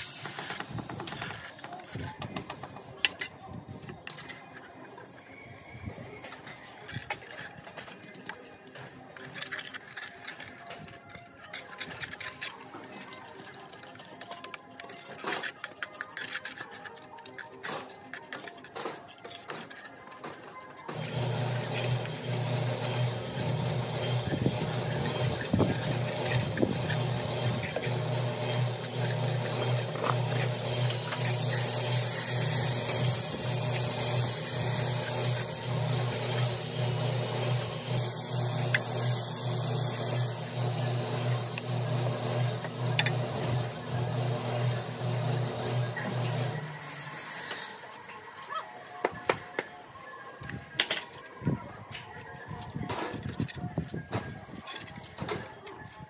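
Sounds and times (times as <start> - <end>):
trowel scraping cement render: 20.9 - 46.6.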